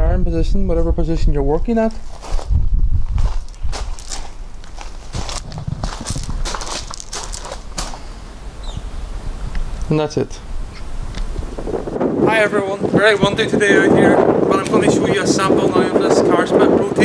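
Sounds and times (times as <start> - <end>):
wind rumble on microphone: 0.0 - 17.0
footsteps on gravel: 2.0 - 8.2.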